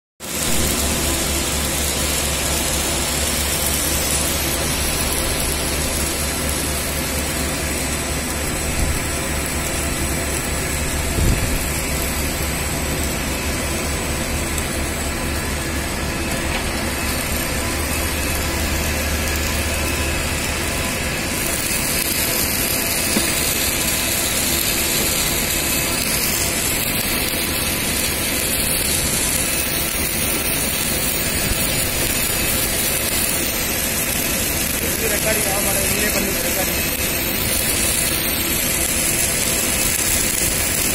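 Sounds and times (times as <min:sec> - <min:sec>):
welding machinery hum: 0:00.2 - 0:40.9.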